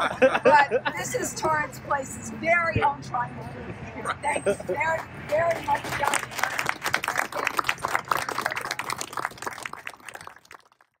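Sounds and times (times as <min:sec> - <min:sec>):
small group applauding: 0:05.3 - 0:11.0.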